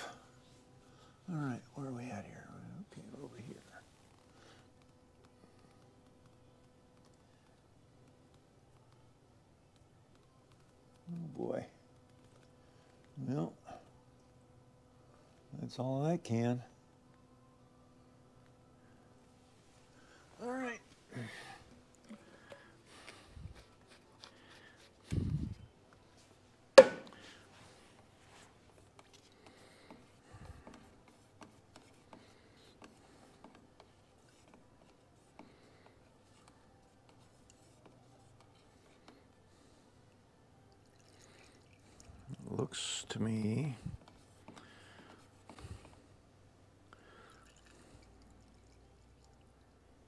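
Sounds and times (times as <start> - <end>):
paint stirring in plastic cup: 21.7 - 26.3, 27.1 - 46.1, 47.1 - 49.7
sharp knock: 26.8 - 27.1.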